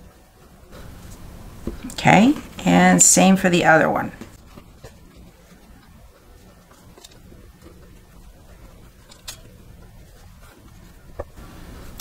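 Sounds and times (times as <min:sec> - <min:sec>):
fabric rustling: 0:04.1 - 0:12.0.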